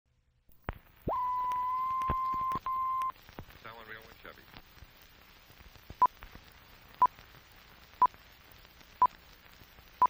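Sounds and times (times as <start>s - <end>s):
faint film crackle clicks: 0.5s - 10.0s.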